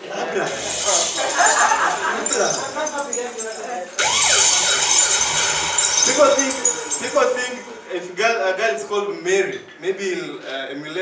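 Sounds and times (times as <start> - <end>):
audience laughing: 0.0 - 2.8.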